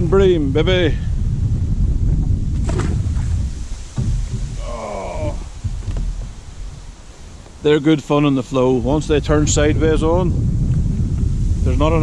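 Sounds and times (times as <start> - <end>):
wind buffeting microphone: 0.0 - 12.0
fish splashing into river: 2.6 - 5.7.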